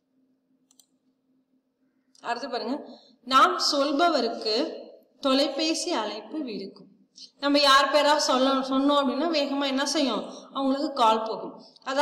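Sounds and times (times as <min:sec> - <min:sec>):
computer mouse clicks: 0:00.6 - 0:01.0.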